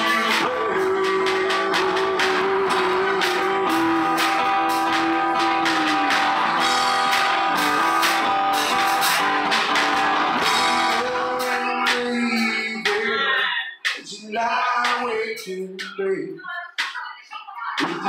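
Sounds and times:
acoustic guitar strumming: 0:00.0 - 0:16.0.

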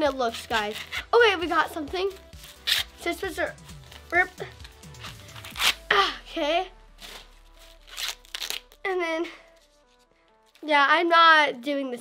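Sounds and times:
corn husk tearing: 0:02.4 - 0:03.0, 0:04.9 - 0:06.0, 0:06.9 - 0:09.0.

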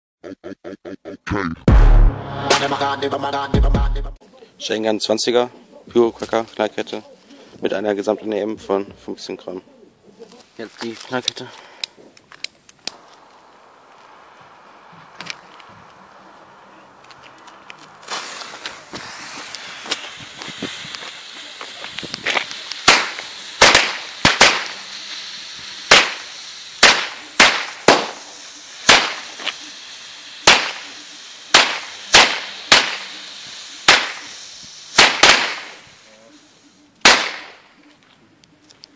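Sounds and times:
fuse hissing: 0:11.0 - 0:37.5
firecrackers banging: 0:12.6 - 0:36.1, 0:37.0 - 0:37.7.

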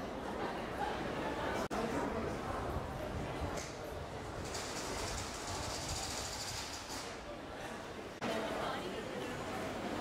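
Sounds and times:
crowd of pedestrians: 0:00.0 - 0:10.0.

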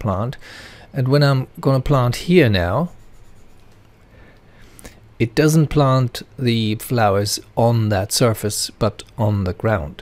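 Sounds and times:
computer mouse rubbing on desk: 0:02.8 - 0:03.9.

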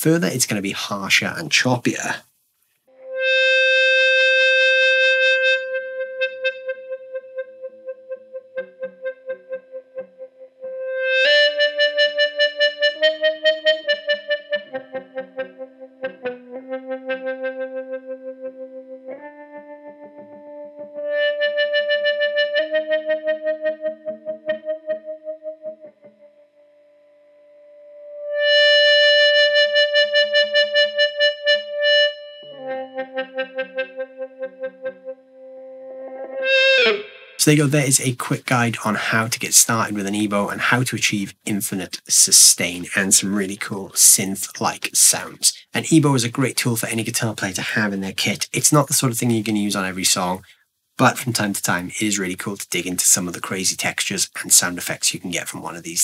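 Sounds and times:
pulsing sustained electric guitar: 0:02.9 - 0:37.4.

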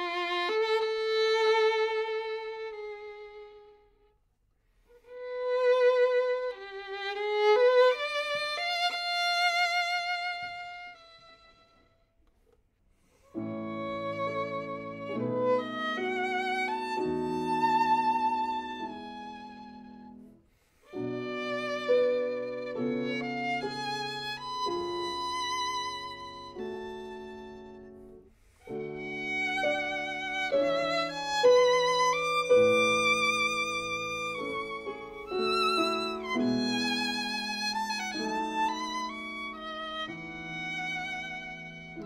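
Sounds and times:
solo violin: 0:00.0 - 0:04.2, 0:04.8 - 0:42.0
piano accompaniment: 0:13.4 - 0:42.0.

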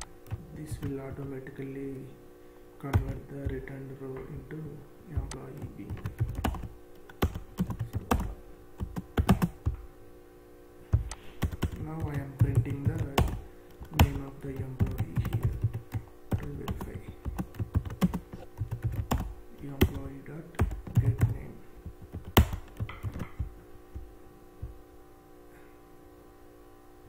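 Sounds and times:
typing on computer keyboard: 0:02.9 - 0:03.6, 0:05.2 - 0:09.8, 0:11.0 - 0:23.5.

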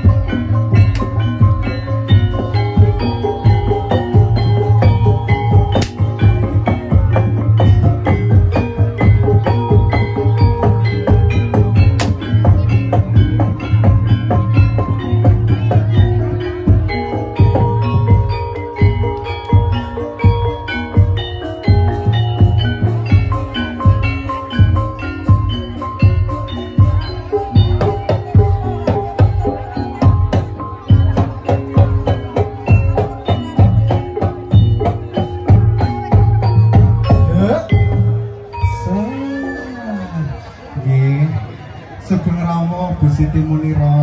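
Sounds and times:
drum strokes in fast beat: 0:00.0 - 0:38.3
bright metallophone notes: 0:00.0 - 0:44.0
gamelan music: 0:00.0 - 0:44.0
ringing metal percussion: 0:00.0 - 0:44.0.

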